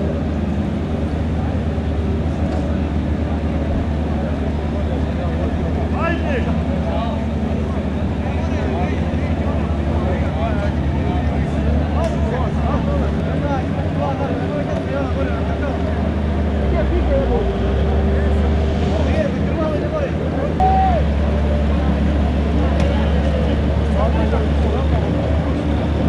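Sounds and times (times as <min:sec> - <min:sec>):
babble of voices: 0:00.0 - 0:26.0
boat engines running: 0:00.0 - 0:26.0.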